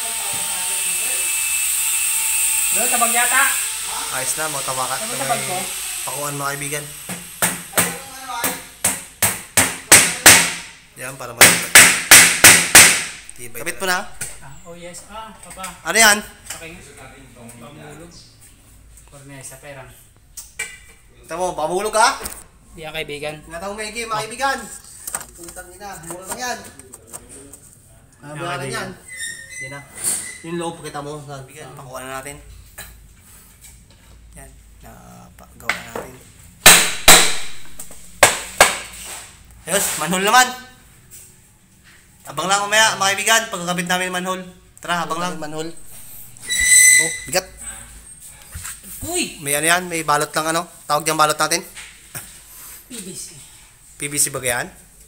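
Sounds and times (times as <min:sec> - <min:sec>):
claw hammer driving nails into wood: 0:08.8 - 0:10.7, 0:11.4 - 0:13.2, 0:36.6 - 0:38.9.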